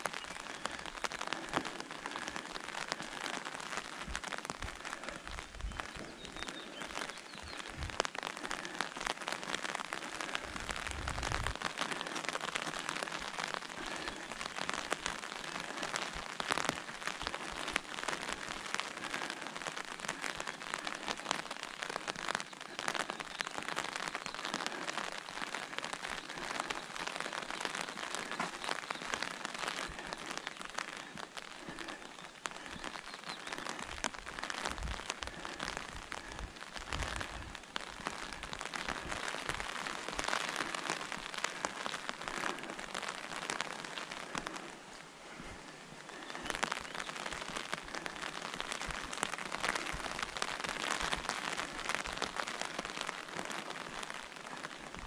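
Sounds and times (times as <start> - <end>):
rain pattering on an umbrella: 0.0 - 55.0.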